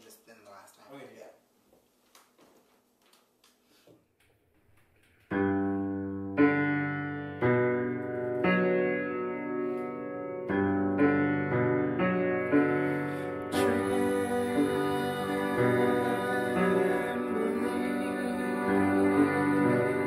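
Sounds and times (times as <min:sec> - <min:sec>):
piano chords ringing: 0:05.3 - 0:20.0.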